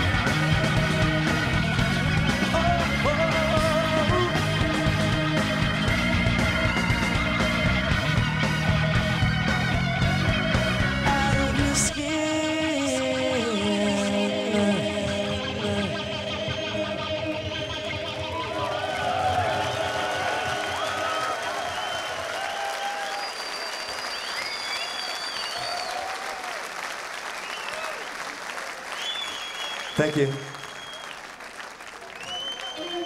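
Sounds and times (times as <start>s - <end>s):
audience applause and cheering: 0.0s - 11.0s, 17.0s - 33.0s
rock band electric guitar chords: 0.0s - 20.8s
high whistles: 21.4s - 26.1s, 27.4s - 28.1s, 28.9s - 31.3s, 32.2s - 33.0s.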